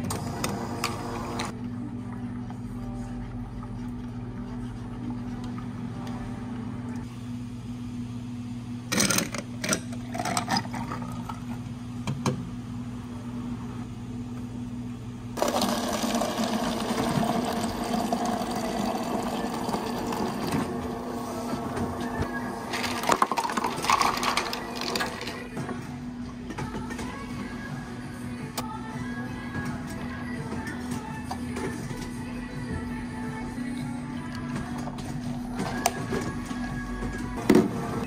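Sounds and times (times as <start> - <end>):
low machine hum: 0.0 - 38.0
ice clinking: 22.7 - 25.4.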